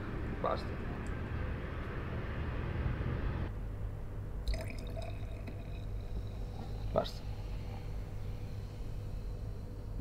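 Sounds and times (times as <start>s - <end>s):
wine pouring into glass: 4.5s - 6.2s.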